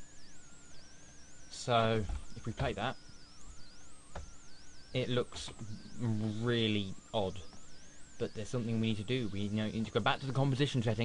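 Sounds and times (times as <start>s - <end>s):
faint wavering high-pitched tones: 0.0s - 11.0s.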